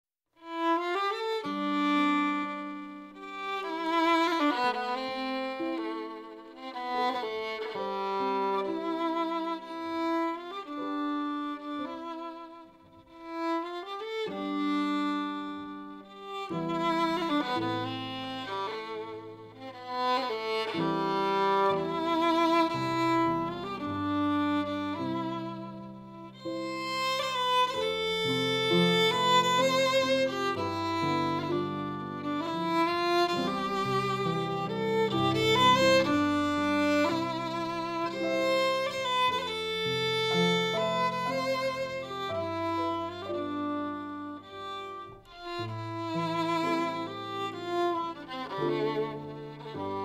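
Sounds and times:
fiddle playing slow air: 0:00.4 - 0:50.0.

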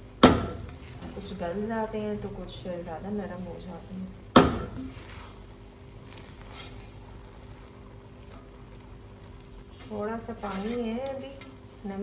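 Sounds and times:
faint steady hum: 0:00.0 - 0:12.0
spatula scraping rice in a pot: 0:04.8 - 0:11.4.

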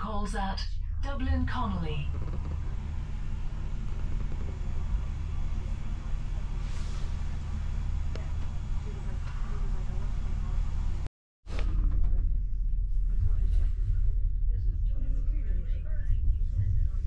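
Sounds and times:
train carriage rumble: 0:01.0 - 0:17.0.

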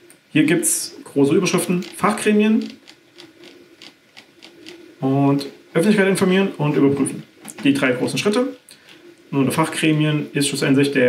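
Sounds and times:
mouse scroll wheel ticking: 0:01.4 - 0:04.8.

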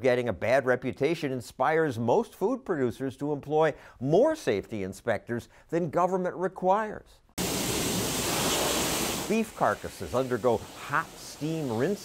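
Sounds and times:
hissing steam and water spray: 0:07.4 - 0:12.0.

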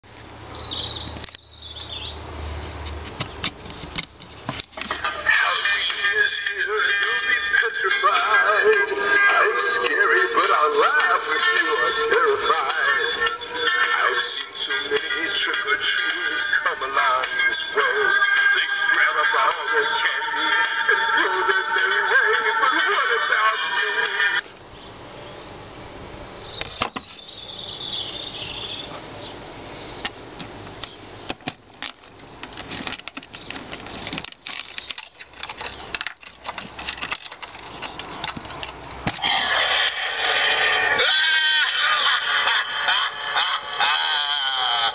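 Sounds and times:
spooky electronic song: 0:04.9 - 0:24.4, 0:39.2 - 0:44.9.

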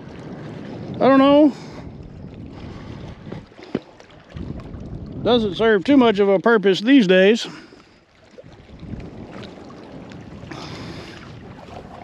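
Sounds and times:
small waves lapping on shore: 0:00.0 - 0:12.0
wind buffeting microphone: 0:00.0 - 0:12.0.

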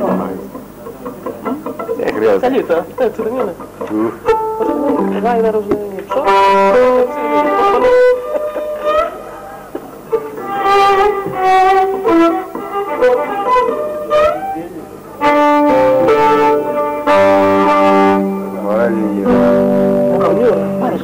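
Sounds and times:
bowed lyra folk tune: 0:00.0 - 0:09.5, 0:10.1 - 0:21.0
strummed guitar: 0:00.0 - 0:21.0.

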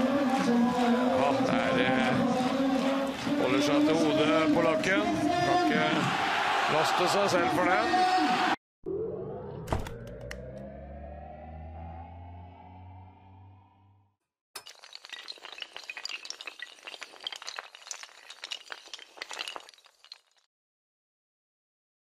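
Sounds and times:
low rising tone with deep hum: 0:08.8 - 0:14.1.

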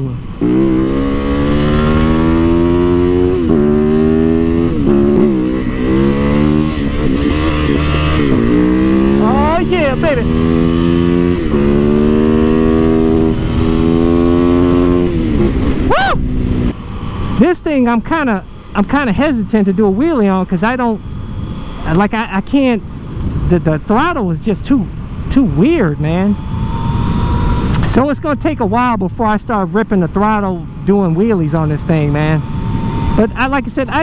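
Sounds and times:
motorcycle engine accelerating: 0:00.0 - 0:24.0, 0:25.0 - 0:34.0.

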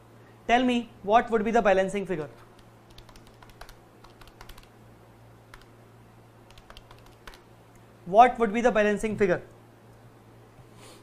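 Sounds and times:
computer keyboard typing: 0:02.4 - 0:04.7, 0:05.5 - 0:05.7, 0:06.5 - 0:07.5.

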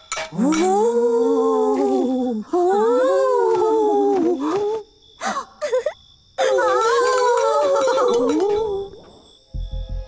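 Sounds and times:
high cartoon ghost voice: 0:05.7 - 0:08.9.

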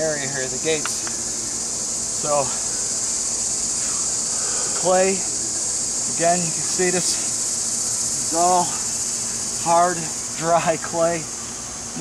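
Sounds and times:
high-pitched insect drone: 0:00.0 - 0:12.0.

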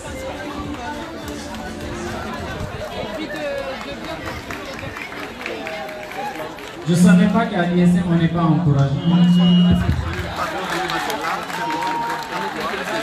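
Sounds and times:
chatter of people: 0:00.0 - 0:13.0.

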